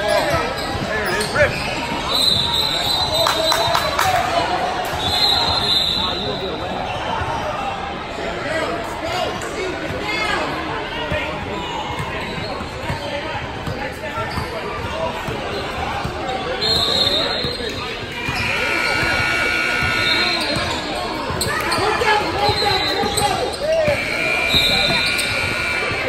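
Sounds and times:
players' voices: 0.0s - 26.0s.

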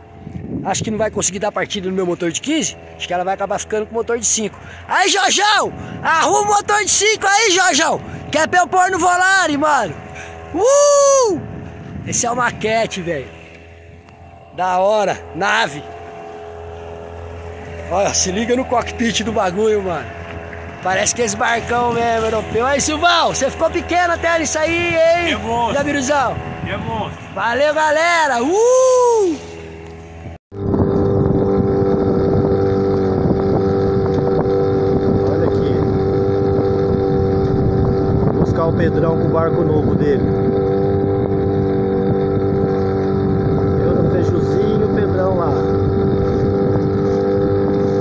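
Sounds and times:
wind on microphone: 0.0s - 1.5s, 9.9s - 14.5s, 19.3s - 23.1s, 24.1s - 27.7s, 30.2s - 48.0s
outboard motor running: 0.0s - 48.0s.

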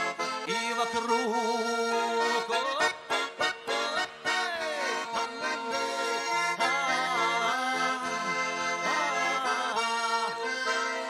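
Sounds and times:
button accordion folk melody: 0.0s - 11.0s.

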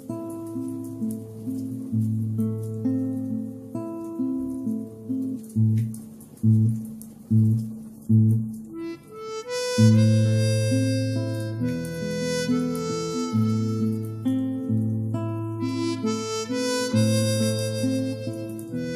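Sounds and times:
acoustic guitar plucked bass notes: 0.0s - 18.9s
harmonica held notes: 8.7s - 14.8s, 15.5s - 18.9s.

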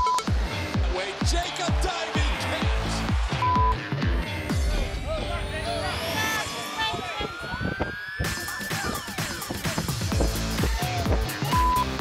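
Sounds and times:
soundtrack music: 0.0s - 12.0s.

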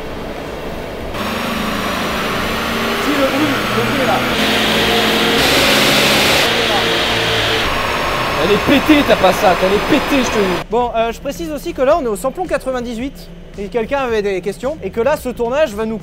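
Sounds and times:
car engine revving on dynamometer: 0.0s - 10.6s.

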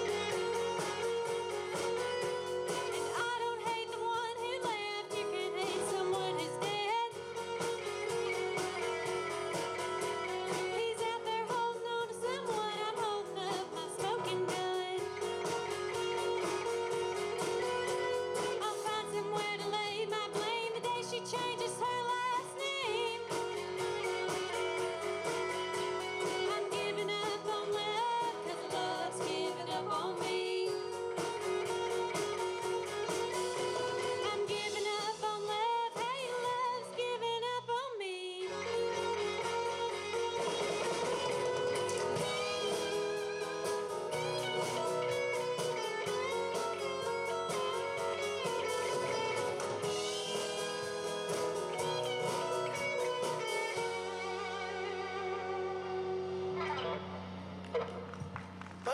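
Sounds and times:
live rock band playing: 0.0s - 37.2s, 38.4s - 58.7s
electric guitar lead: 0.0s - 58.9s
woman singing: 2.7s - 9.1s, 10.2s - 24.9s, 25.8s - 32.9s, 33.5s - 42.8s.

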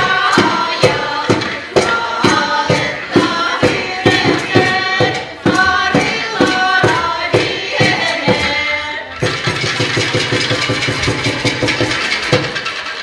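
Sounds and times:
women singing in chorus: 0.0s - 9.2s
steady beat: 0.0s - 12.6s.

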